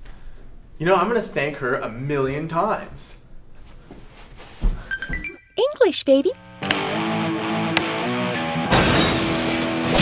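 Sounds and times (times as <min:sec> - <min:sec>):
background music: 0:06.3 - 0:10.0
glass shattering: 0:08.7 - 0:10.0.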